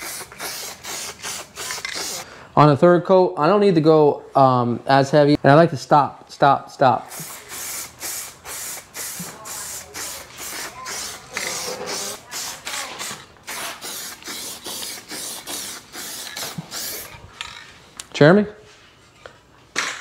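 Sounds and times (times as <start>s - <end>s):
aerosol spray can hissing: 0.0s - 2.2s, 7.1s - 17.2s.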